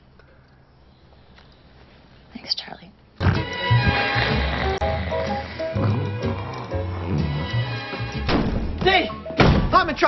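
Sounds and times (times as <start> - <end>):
music playing: 3.2 - 9.4
door banging open: 8.2 - 8.8, 9.4 - 9.8.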